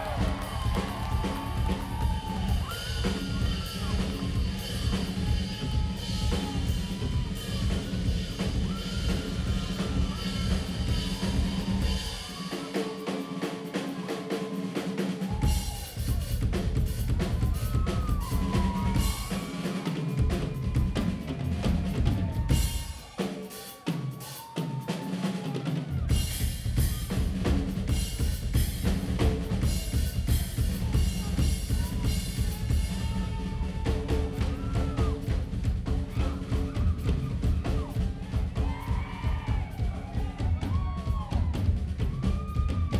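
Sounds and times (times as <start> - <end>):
rock drum kit played fast: 0.0 - 42.9.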